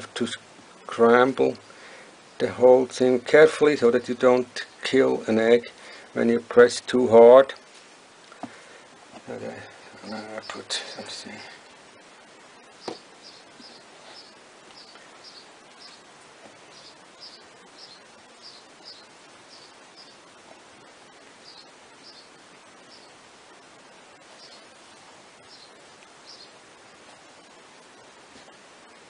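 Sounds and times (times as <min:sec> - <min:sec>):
steady hiss: 0:00.0 - 0:29.0.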